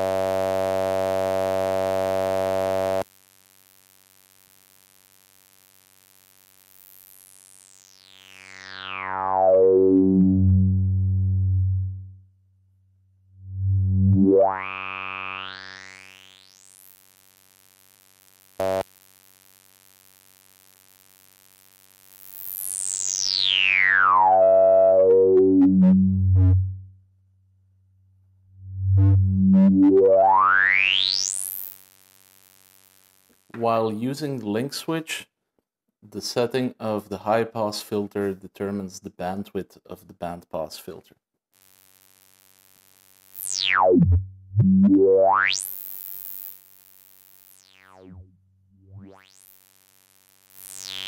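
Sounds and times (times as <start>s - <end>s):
buzzy synth drone filter sweep: 0.0s - 3.0s, 7.7s - 12.2s, 13.4s - 16.7s, 18.6s - 18.8s, 22.6s - 27.0s, 28.6s - 31.7s, 43.3s - 51.0s
synthesizer drone sweeping upward: 9.3s - 12.2s, 13.4s - 14.5s, 24.2s - 26.9s, 28.6s - 30.5s, 43.7s - 45.4s.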